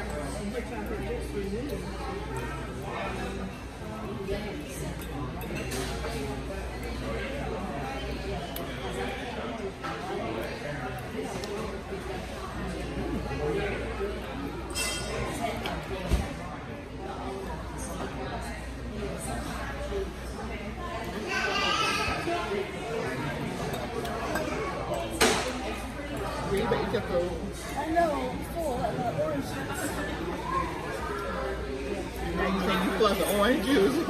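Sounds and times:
indistinct restaurant chatter: 0:00.0 - 0:34.0
murmur of voices: 0:00.0 - 0:34.0
cutlery clinking on plate: 0:14.7 - 0:15.7.

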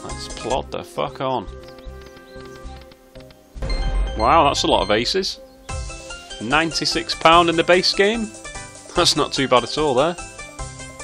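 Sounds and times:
deep win sound: 0:03.6 - 0:06.7
slot game music: 0:03.6 - 0:08.0.

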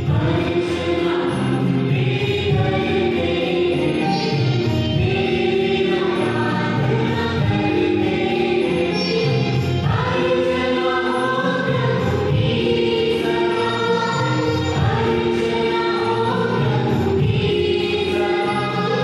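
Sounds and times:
instrumental accompaniment: 0:00.0 - 0:19.0
church choir singing a hymn: 0:00.1 - 0:19.0.

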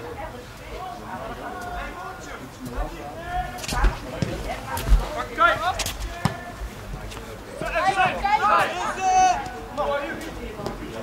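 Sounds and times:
boot kicking ball: 0:03.8 - 0:05.2, 0:06.1 - 0:06.5
players shouting: 0:05.0 - 0:06.7, 0:07.5 - 0:10.2.

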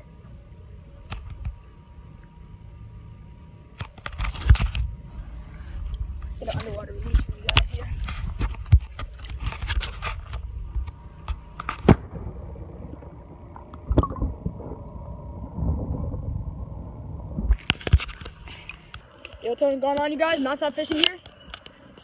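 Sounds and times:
muffled underwater rumble and gurgle: 0:00.0 - 0:19.4.

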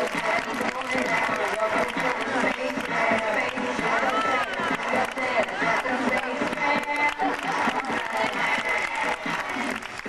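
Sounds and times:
audience clapping: 0:00.0 - 0:10.0
crowd voices: 0:00.0 - 0:10.0.

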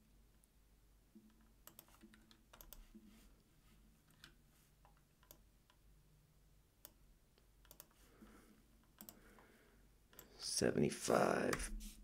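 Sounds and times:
computer keyboard and mouse clicks: 0:01.2 - 0:03.0, 0:04.1 - 0:05.8, 0:07.6 - 0:08.0, 0:08.8 - 0:09.4.

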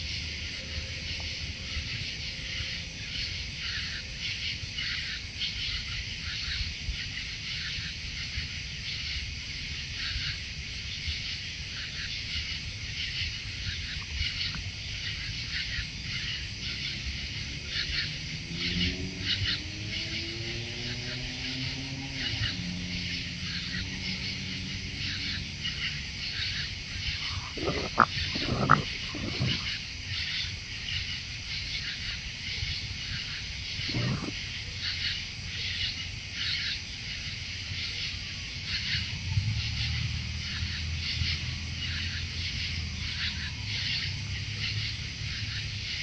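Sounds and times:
raccoons crunching food: 0:27.2 - 0:29.7.

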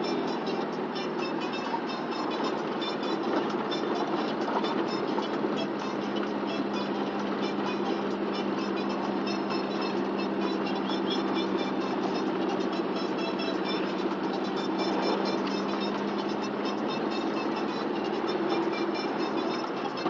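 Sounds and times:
car engine and road noise: 0:00.0 - 0:20.0
music playing: 0:00.0 - 0:20.0.

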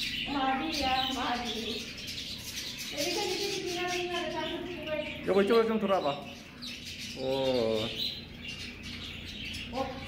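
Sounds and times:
budgerigars chirping: 0:00.0 - 0:10.0.

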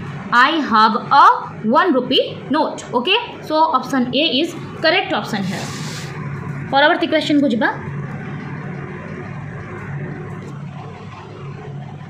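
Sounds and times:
background hum and noise: 0:00.0 - 0:12.0.

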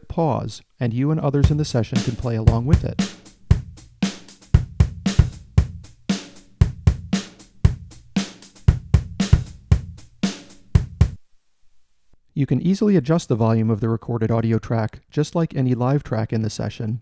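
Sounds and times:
drum kit beat: 0:01.4 - 0:11.2.

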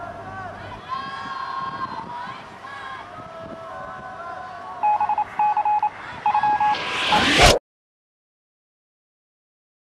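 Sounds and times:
distant shouting voices: 0:00.0 - 0:04.9
electronic beeps: 0:04.8 - 0:07.6
rising whoosh: 0:06.3 - 0:07.6.

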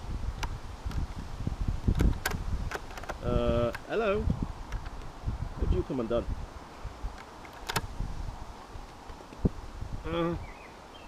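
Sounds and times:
wind rumble on microphone: 0:00.0 - 0:11.0
sharp click: 0:07.2 - 0:07.9.

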